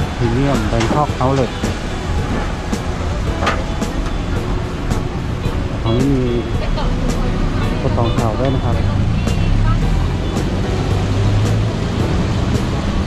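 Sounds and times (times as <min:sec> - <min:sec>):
roadside traffic: 0:00.0 - 0:13.0
vehicle engine rumbling: 0:00.0 - 0:13.0.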